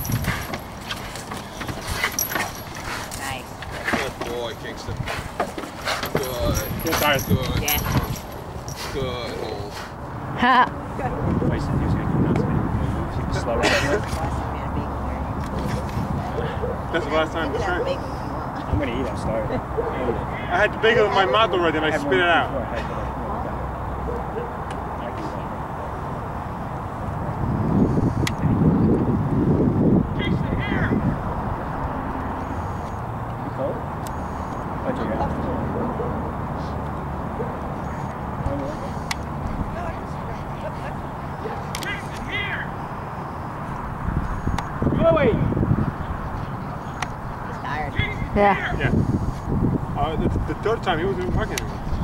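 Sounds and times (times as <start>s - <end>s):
dog feet scuffling on wood: 0.0s - 4.3s.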